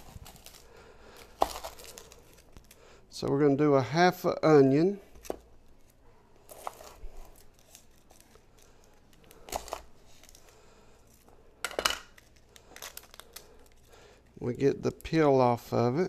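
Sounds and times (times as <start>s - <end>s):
onion skin crackling and tearing: 0.0s - 2.9s, 5.2s - 11.3s, 12.0s - 13.9s.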